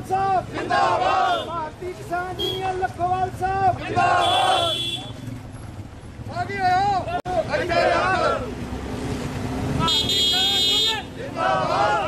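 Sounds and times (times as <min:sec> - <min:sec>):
street traffic rumbling: 0:00.0 - 0:12.0.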